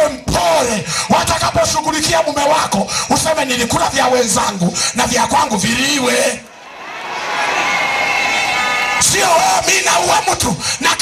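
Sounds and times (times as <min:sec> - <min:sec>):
audience cheering and shouting: 0:06.5 - 0:11.0.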